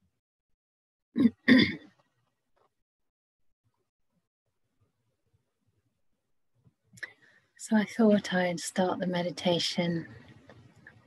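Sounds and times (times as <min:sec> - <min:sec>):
woman clearing her throat: 0:01.2 - 0:01.8.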